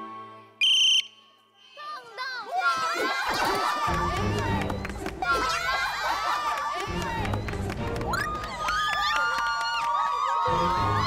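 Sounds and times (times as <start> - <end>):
background music: 0.0 - 1.2, 3.1 - 11.0
shrill whistle blast: 0.6 - 1.4.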